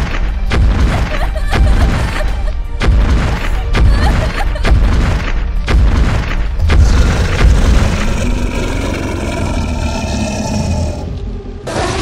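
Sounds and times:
dramatic music: 0.0 - 12.0.

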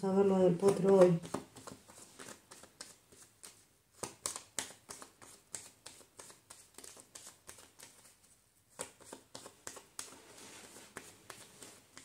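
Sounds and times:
cards being shuffled by hand: 0.2 - 12.0.

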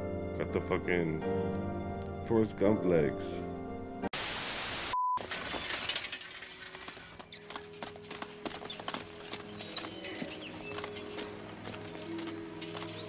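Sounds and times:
film score music: 0.0 - 4.1
child's running footsteps: 6.3 - 13.0.

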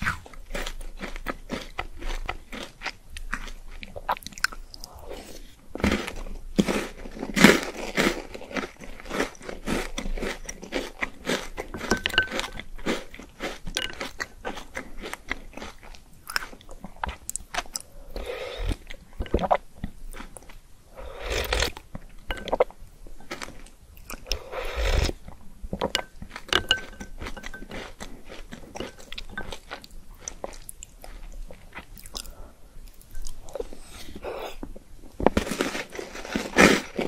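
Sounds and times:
person chewing and crunching: 0.0 - 37.0.

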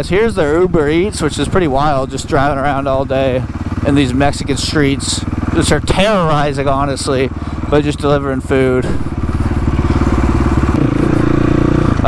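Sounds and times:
dirt bike engine running: 0.0 - 12.0.

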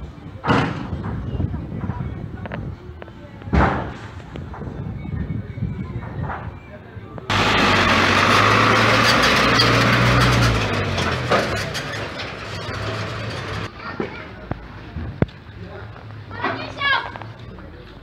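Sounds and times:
road noise: 0.0 - 18.0
truck engine droning: 7.3 - 13.7.

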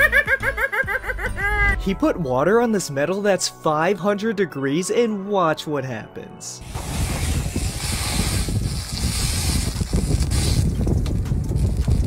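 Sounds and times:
wind rumbling on microphone: 6.6 - 12.0.

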